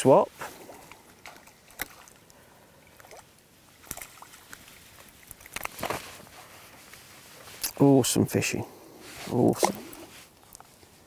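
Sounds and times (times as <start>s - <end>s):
water splashing: 0.0s - 6.4s, 9.3s - 10.1s.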